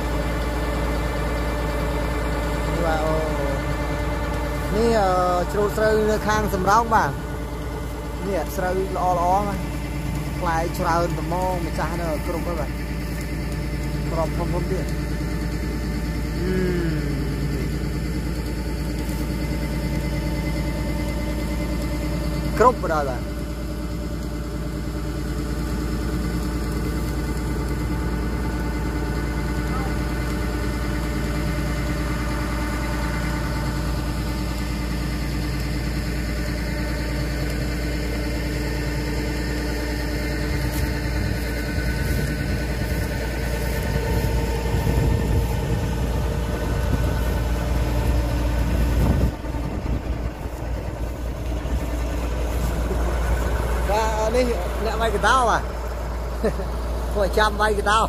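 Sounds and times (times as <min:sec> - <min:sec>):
diesel engine running: 0:00.0 - 0:58.0
steady hum: 0:00.0 - 0:58.0.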